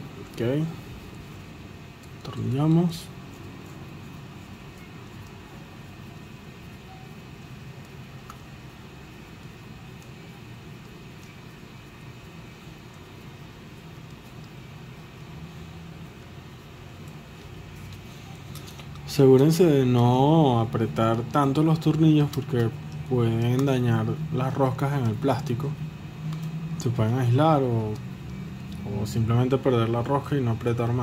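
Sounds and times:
low background hum: 0.0 - 31.0.

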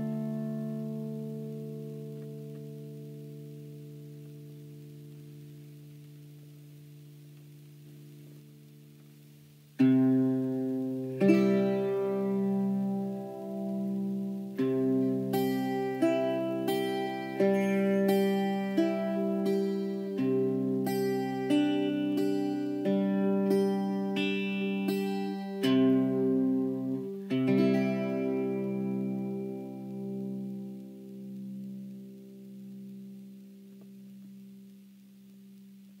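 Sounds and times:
bouzouki plucked notes and chords: 0.0 - 9.0, 9.7 - 34.0.

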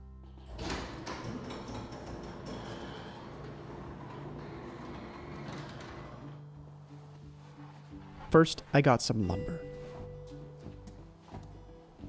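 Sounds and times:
garage door rolling open: 0.0 - 8.4.

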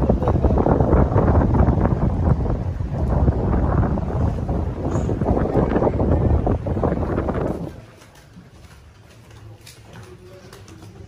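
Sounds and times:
wind buffeting microphone: 0.0 - 8.6.

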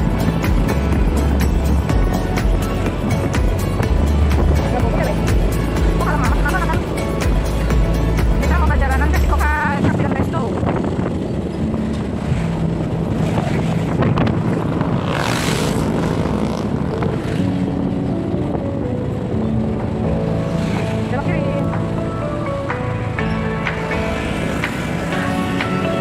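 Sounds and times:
wind rushing over microphone: 0.0 - 19.8
motorcycle engine running: 0.0 - 26.0.

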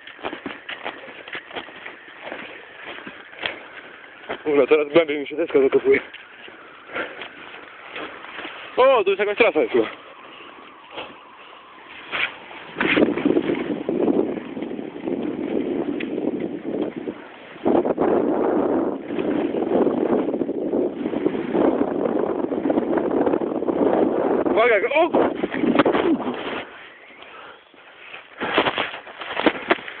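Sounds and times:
snowboard rustle: 0.0 - 22.3, 25.1 - 30.0
handling noise rustling: 27.8 - 30.0.

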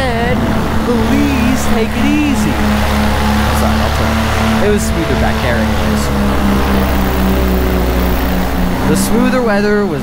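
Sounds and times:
paramotor engine droning: 0.0 - 10.0.

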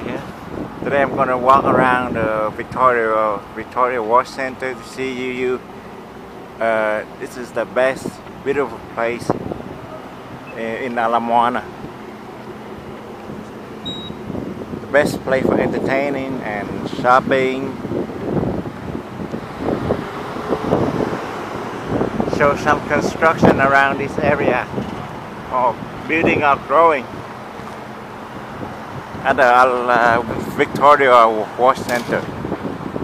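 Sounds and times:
street traffic: 0.0 - 33.0
wind rumbling on microphone: 0.0 - 33.0
faint high beep: 13.8 - 14.2.

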